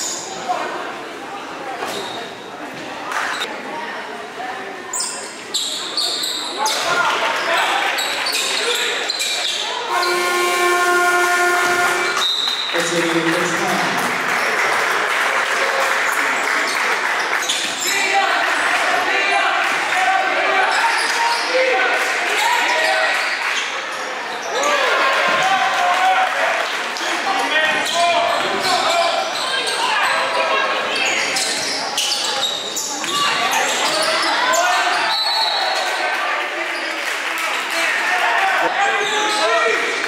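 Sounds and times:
crowd voices: 0.0 - 40.0
scoreboard horn: 9.9 - 12.2.

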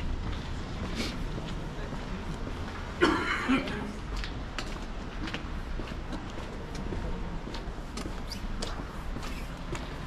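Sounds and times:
faint voices of passers-by: 0.0 - 10.0
low street rumble: 0.0 - 10.0.

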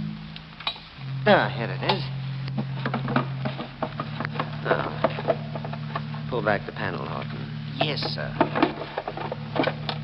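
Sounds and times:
low steady tone: 0.0 - 10.0.

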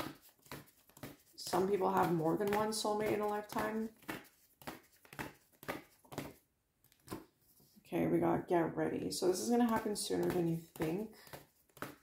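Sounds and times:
cards being shuffled: 0.0 - 7.8, 9.3 - 12.0.

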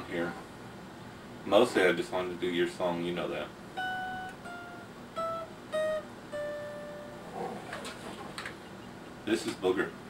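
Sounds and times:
acoustic guitar picking notes: 3.6 - 9.3.

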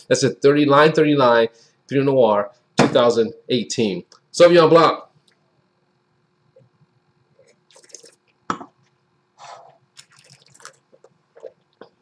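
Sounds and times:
person slurping wine: 7.4 - 8.3, 9.4 - 11.9.

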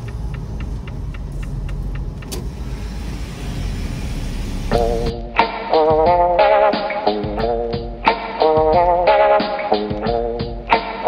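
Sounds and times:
light ticking: 0.0 - 2.6
diesel truck engine rumble: 0.0 - 5.2.

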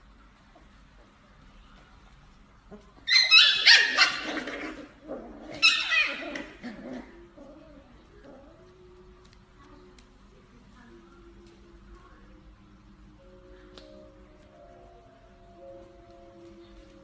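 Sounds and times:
puppies yelping and squealing: 3.0 - 7.2.

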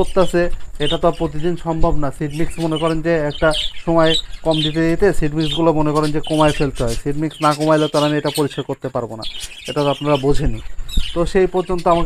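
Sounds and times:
budgerigars chattering and chirping: 0.0 - 12.0
man speaking: 0.0 - 12.0.

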